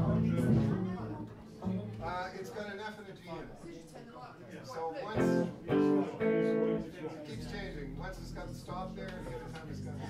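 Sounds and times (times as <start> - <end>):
low talk in room: 0.0 - 10.0
electric guitar chords: 5.2 - 6.9.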